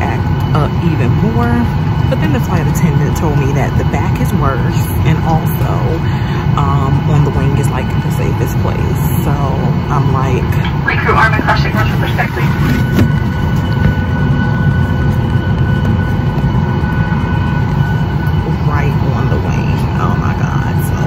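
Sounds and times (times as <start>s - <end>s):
airliner cabin low rumble: 0.0s - 21.0s
faint steady whine: 0.0s - 21.0s.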